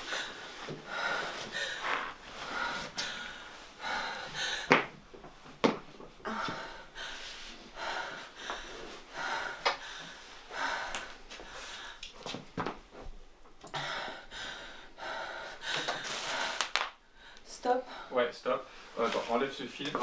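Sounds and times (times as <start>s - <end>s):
woman gasping: 6.2s - 12.0s.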